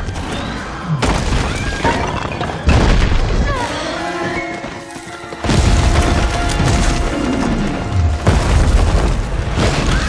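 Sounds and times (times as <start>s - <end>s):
dramatic film score: 0.0s - 10.0s
stone column crashing down: 5.4s - 10.0s.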